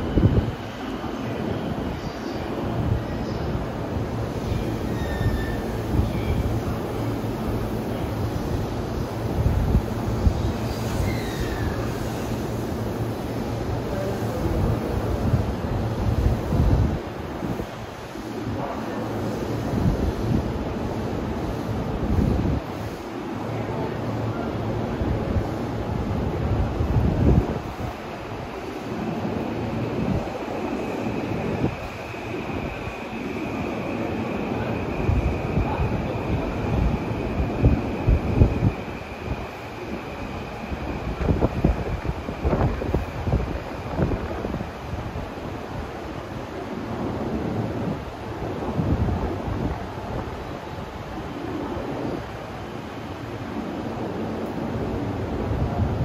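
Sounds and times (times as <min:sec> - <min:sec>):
rumbling station platform noise: 0:00.0 - 0:56.0.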